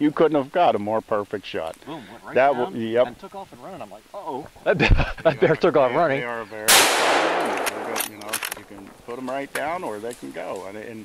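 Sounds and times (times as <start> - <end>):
gunshot echoing through woods: 6.7 - 8.2
sharp clicks and snaps: 7.3 - 8.8.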